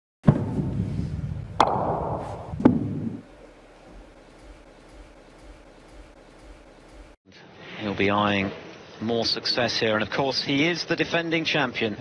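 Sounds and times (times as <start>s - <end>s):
low steady hum: 0.3s - 7.2s.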